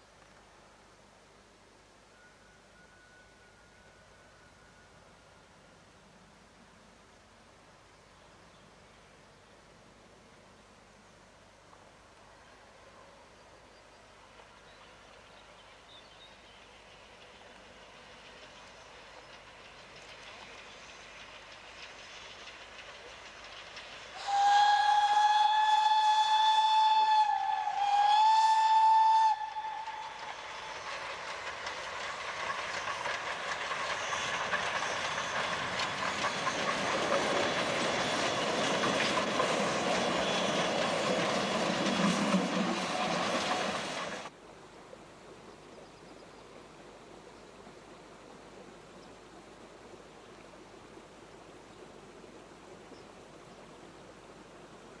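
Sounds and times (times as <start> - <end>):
train running noise: 14.2 - 44.3
steam whistle blasts: 24.1 - 31.2, 39.9 - 44.3.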